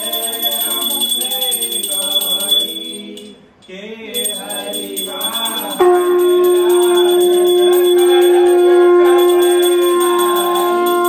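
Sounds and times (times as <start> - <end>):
hand bell ringing rapidly: 0.0 - 3.2, 4.1 - 11.0
people singing: 0.0 - 11.0
conch shell blown: 5.8 - 11.0.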